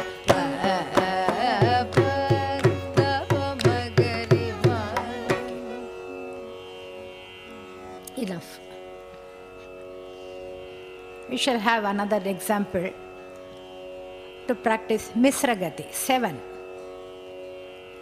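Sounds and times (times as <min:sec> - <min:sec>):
woman singing vocal exercise: 0:00.0 - 0:06.5
tambura drone: 0:00.0 - 0:18.0.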